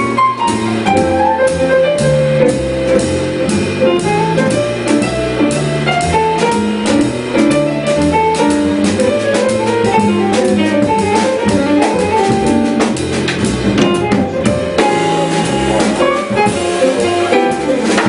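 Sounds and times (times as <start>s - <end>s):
jazz trio playing: 0.0s - 18.0s.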